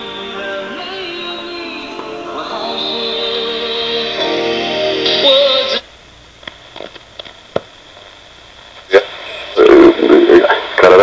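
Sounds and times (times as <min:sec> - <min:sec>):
radio playing music with singing: 0:00.0 - 0:11.0
radio knob clicks: 0:06.4 - 0:07.7
loud broadcast voice: 0:08.9 - 0:11.0.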